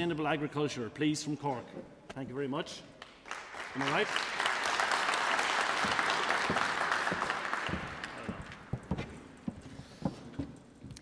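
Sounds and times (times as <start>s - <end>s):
audience applauding: 3.0s - 8.9s.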